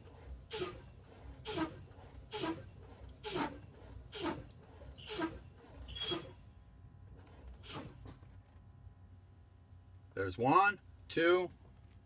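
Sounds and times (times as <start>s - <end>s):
air brake hiss: 3.2s - 5.4s, 7.6s - 8.0s.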